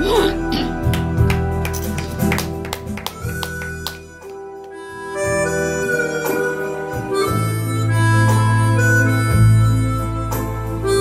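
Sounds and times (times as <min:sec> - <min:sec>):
slow keyboard melody: 0:00.0 - 0:11.0.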